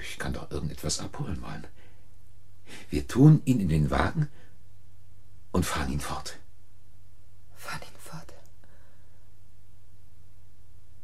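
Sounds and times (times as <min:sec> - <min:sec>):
low hum and hiss: 0:00.0 - 0:11.0
person whispering: 0:07.6 - 0:08.5.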